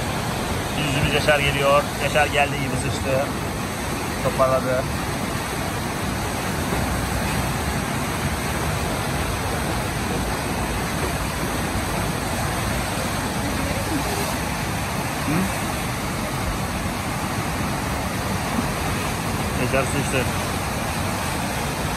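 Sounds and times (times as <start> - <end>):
whitewater rushing: 0.0 - 21.9.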